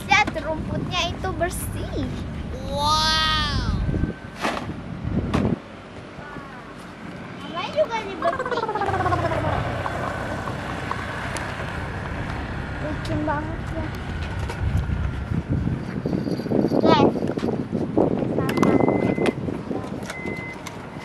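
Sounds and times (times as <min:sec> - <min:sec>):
low background rumble: 0:00.0 - 0:05.6
child squealing and calling: 0:02.5 - 0:03.9.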